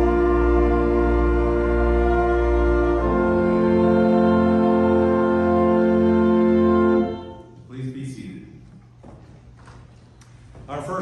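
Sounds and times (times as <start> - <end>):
man's voice: 7.6 - 8.7, 10.7 - 11.0.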